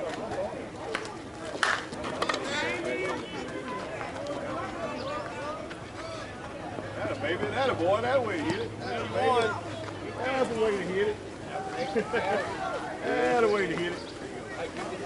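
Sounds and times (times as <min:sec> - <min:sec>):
players chattering and shouting: 0:00.0 - 0:15.0.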